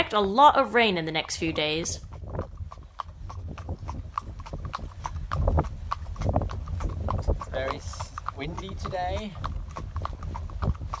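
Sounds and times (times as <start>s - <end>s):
horse hooves clip-clopping on asphalt: 0.0s - 11.0s
wind rumble on microphone: 0.0s - 11.0s.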